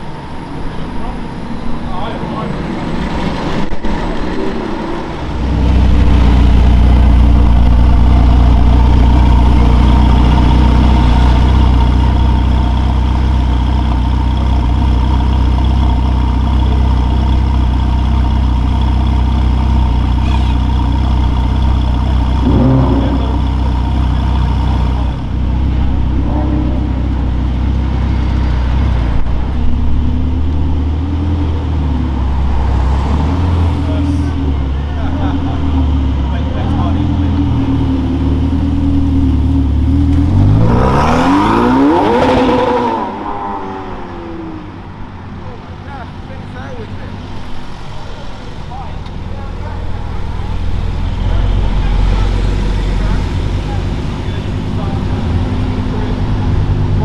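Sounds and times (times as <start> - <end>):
car engines idling: 0.0 - 57.0
engine revving: 2.0 - 44.8.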